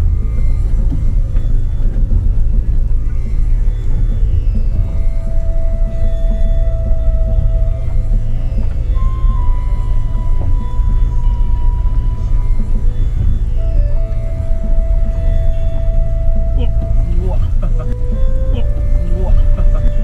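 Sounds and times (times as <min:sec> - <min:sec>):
eerie music with long held notes: 0:00.0 - 0:20.0
low rumble of car cabin: 0:00.0 - 0:20.0.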